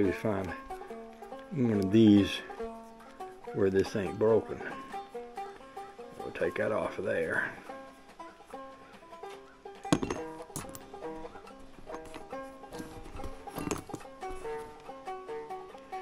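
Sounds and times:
banjo music: 0.0s - 16.0s
metal parts clicking: 9.8s - 11.0s, 11.9s - 14.1s.

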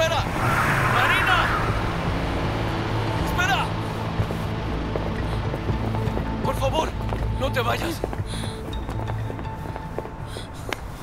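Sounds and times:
car engine rumbling: 0.0s - 7.4s.

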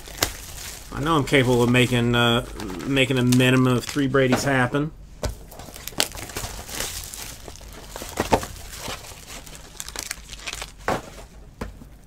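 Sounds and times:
plastic shrink wrap crinkling: 0.0s - 4.4s, 5.3s - 11.4s.

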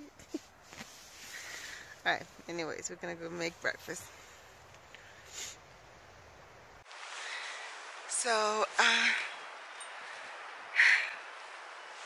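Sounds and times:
steady faint hiss: 0.0s - 12.0s
woman speaking: 2.0s - 4.1s, 8.1s - 9.3s
sharp nose sniff: 5.3s - 5.6s.

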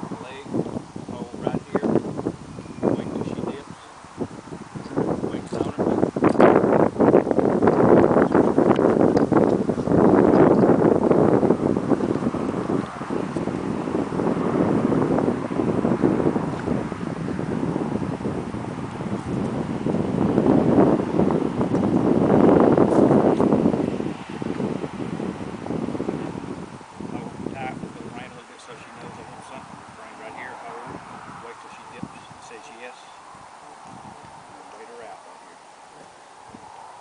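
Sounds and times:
wind gusting across microphone: 0.0s - 37.0s.

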